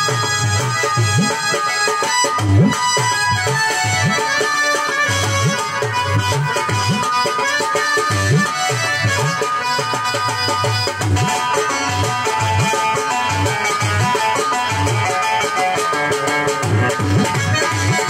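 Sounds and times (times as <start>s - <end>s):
held melody notes: 0.0s - 18.0s.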